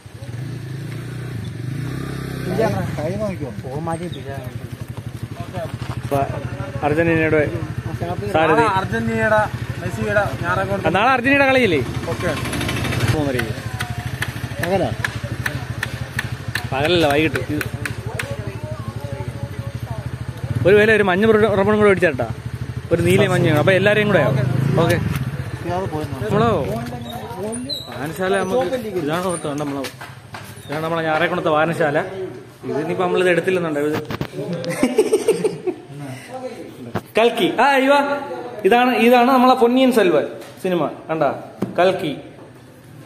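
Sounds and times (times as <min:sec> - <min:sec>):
motorcycle engine idling: 0:00.0 - 0:24.6.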